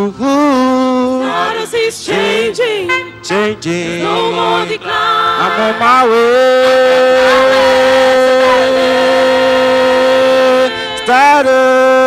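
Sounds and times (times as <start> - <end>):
choir holding a note: 1.2 - 12.0.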